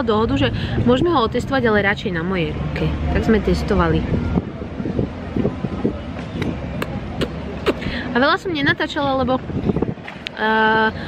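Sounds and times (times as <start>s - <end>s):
wind on microphone: 0.2s - 11.0s.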